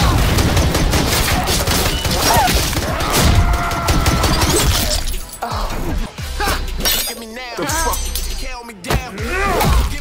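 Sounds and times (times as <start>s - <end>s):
rapid heavy gunfire: 0.0s - 4.6s
man yelling: 7.3s - 8.1s, 8.7s - 10.0s.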